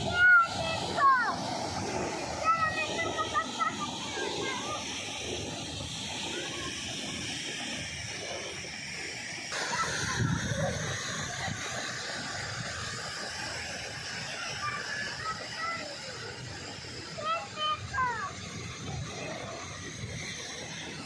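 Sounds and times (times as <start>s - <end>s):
steady hiss: 0.0s - 21.0s
wind buffeting microphone: 9.9s - 12.9s.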